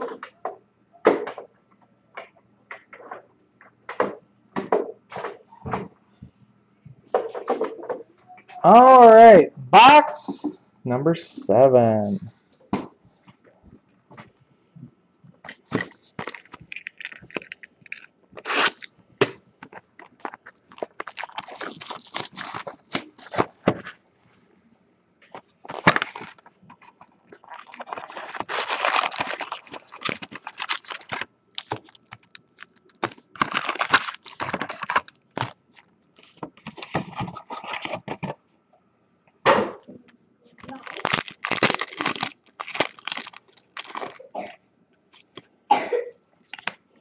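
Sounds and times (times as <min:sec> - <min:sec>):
foil packs crinkling: 0:15.5 - 0:18.9, 0:19.6 - 0:24.0, 0:25.6 - 0:38.3, 0:40.6 - 0:44.4.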